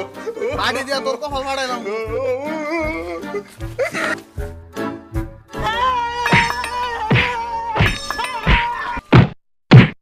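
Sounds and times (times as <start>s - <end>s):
music with thudding beat: 6.3s - 10.0s
loud whacks: 6.4s - 10.0s.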